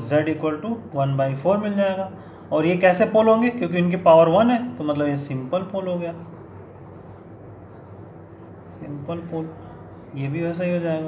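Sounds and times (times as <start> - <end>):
pen scratching on paper: 0.4 - 3.5, 5.6 - 11.0.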